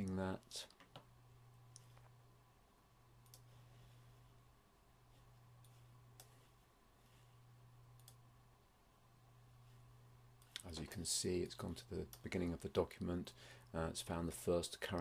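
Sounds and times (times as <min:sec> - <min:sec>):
low hum: 0:00.0 - 0:14.2.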